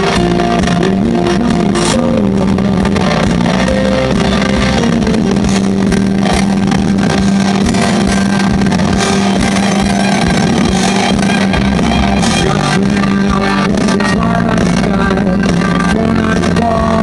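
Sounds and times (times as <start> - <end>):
electric bass: 0.0 - 17.0
electric guitar: 0.0 - 17.0
rock band playing loudly: 0.0 - 17.0.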